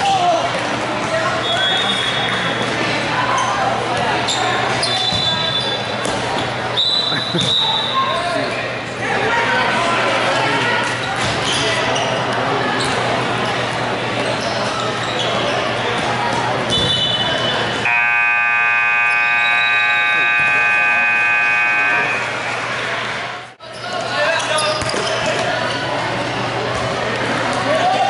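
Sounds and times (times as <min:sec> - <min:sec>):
players ball and voices in a hall: 0:00.0 - 0:28.0
scoreboard buzzer: 0:17.9 - 0:22.7
higher buzzer tone: 0:17.9 - 0:22.8.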